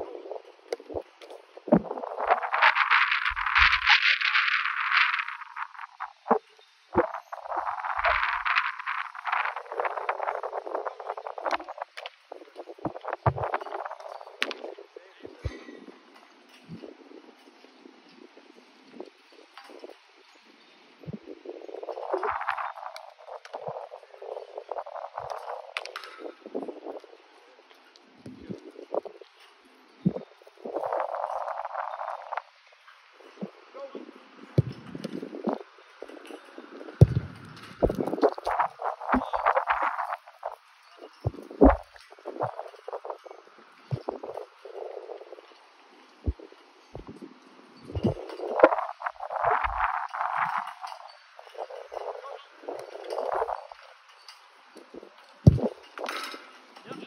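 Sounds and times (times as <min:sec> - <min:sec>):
wind on microphone: 0:00.0 - 0:20.2, 0:20.8 - 0:27.3, 0:28.2 - 0:29.3, 0:30.0 - 0:45.5, 0:46.2 - 0:53.8, 0:54.8 - 0:56.3
balls kicked and thudding: 0:34.6 - 0:35.6, 0:37.0 - 0:38.4, 0:55.4 - 0:56.4.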